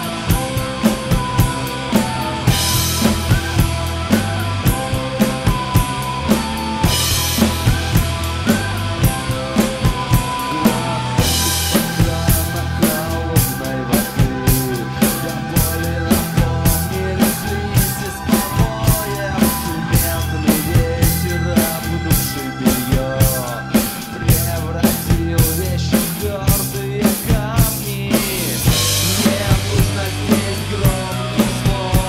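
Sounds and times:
instrumental backing track: 0:00.0 - 0:32.0
rock drum kit beat: 0:00.0 - 0:32.0.

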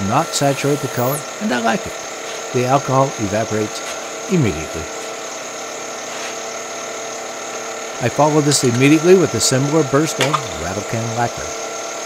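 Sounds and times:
wood lathe running: 0:00.0 - 0:12.0.

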